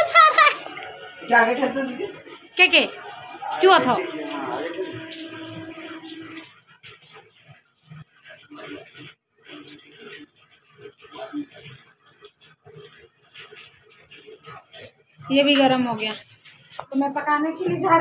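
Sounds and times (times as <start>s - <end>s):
water trickling and splashing: 0.0s - 18.0s.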